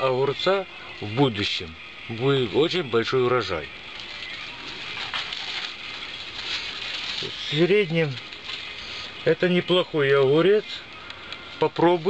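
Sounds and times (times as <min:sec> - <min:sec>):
leaves rustling and crackling: 0:00.0 - 0:12.0.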